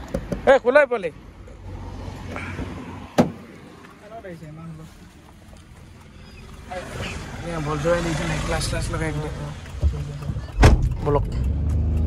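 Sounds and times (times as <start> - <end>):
car door shutting: 3.2 - 3.4, 10.5 - 11.0.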